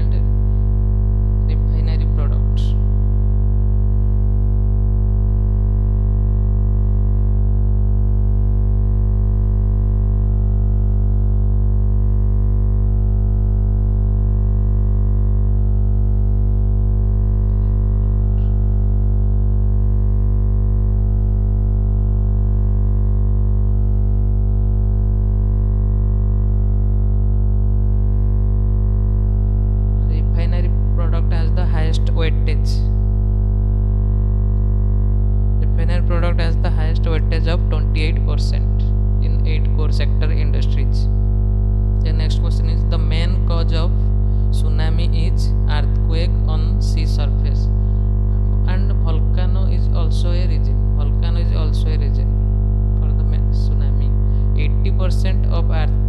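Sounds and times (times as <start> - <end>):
buzzy electrical hum: 0.0 - 56.0.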